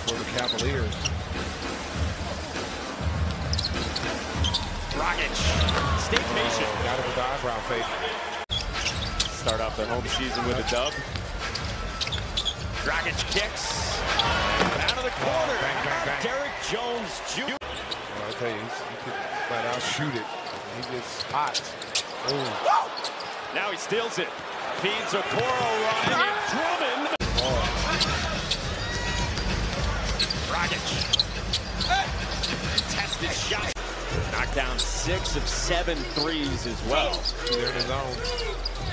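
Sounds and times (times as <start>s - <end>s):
sneaker squeaks: 0.0s - 1.8s, 3.3s - 6.6s, 8.3s - 13.4s, 17.6s - 18.6s, 19.8s - 23.5s, 27.2s - 33.8s, 36.0s - 38.9s
crowd noise: 0.0s - 38.9s
arena crowd rumble: 1.2s - 8.5s, 12.8s - 20.9s.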